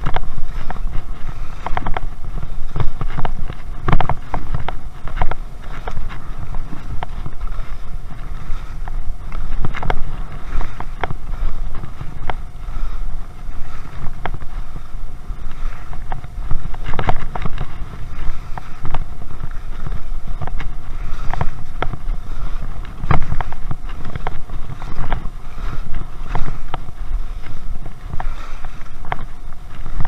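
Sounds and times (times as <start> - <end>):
skis scraping on snow: 0.0 - 30.0
wind rumble on microphone: 0.0 - 30.0.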